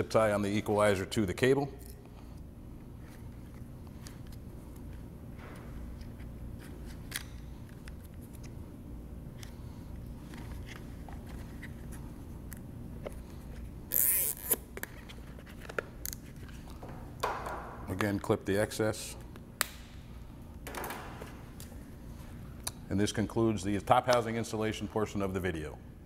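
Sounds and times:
low steady hum: 0.0 - 26.0
zip tie ratcheting: 13.9 - 14.7.

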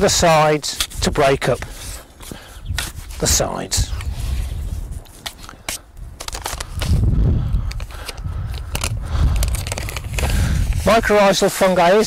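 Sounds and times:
garden fork scraping stony soil: 0.2 - 5.8.

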